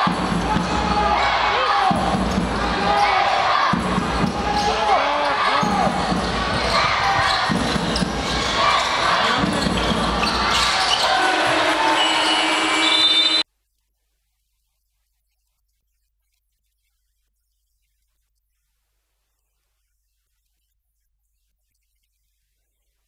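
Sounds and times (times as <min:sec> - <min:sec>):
basketball bouncing on court: 0:00.0 - 0:11.7
voices of players and crowd: 0:00.0 - 0:13.4
sneakers squeaking: 0:04.2 - 0:13.4.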